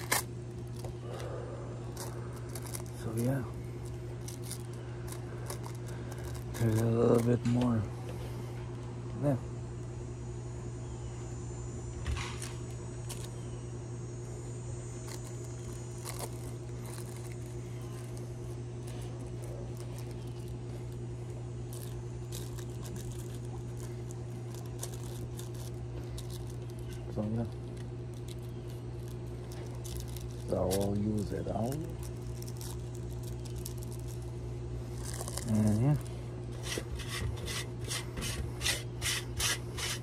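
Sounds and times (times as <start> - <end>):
paper crinkling: 0.0 - 7.5, 15.0 - 37.8
steady low hum: 0.0 - 40.0.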